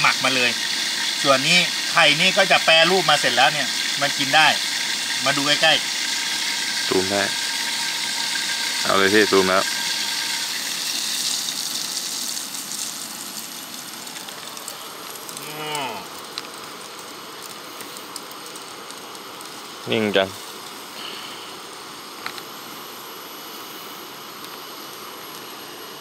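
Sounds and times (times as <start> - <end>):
egg sizzling in a hot pot: 0.0 - 26.0
faint fire crackles: 0.0 - 26.0.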